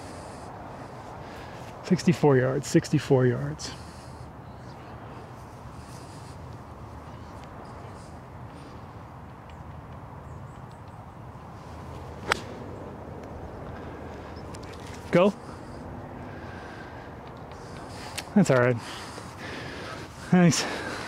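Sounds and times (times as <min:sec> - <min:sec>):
faint steady background noise: 0:00.0 - 0:21.0
golf club striking ball: 0:12.2 - 0:12.6.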